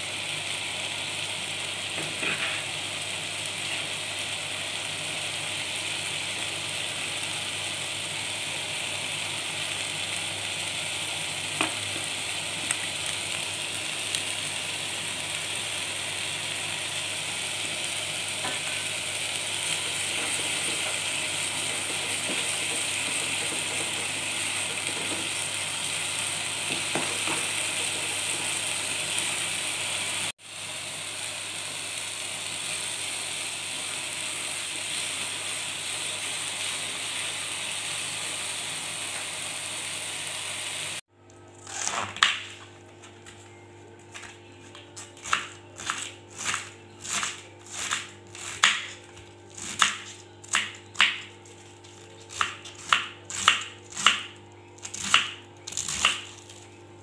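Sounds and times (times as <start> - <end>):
spice paste sizzling in oil: 0.0 - 41.0.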